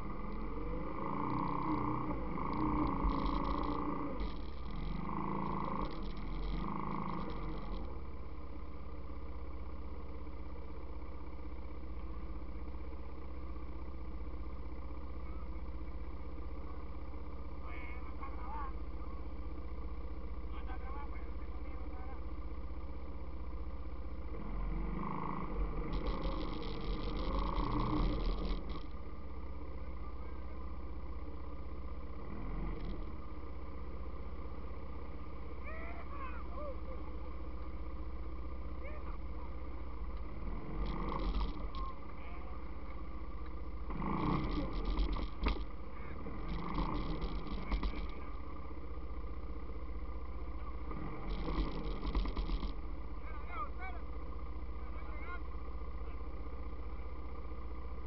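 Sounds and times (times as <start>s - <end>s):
quad bike engine idling: 0.0s - 58.0s.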